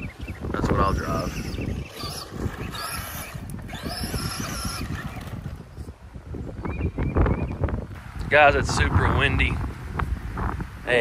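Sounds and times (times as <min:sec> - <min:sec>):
wind rumble on microphone: 0:00.0 - 0:11.0
rc truck motor whine: 0:00.9 - 0:05.6.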